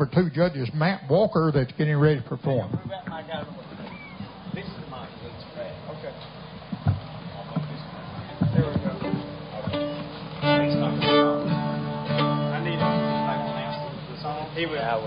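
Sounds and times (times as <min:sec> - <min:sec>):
acoustic guitar strum ringing: 0:08.3 - 0:14.4.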